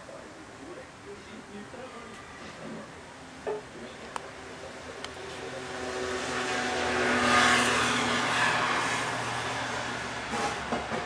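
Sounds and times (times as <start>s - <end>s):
car driving past: 5.4s - 11.0s.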